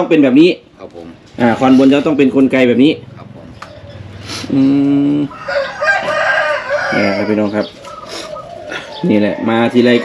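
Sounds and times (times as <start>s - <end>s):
man humming short mm: 4.3s - 5.3s
rooster crowing: 5.2s - 10.0s.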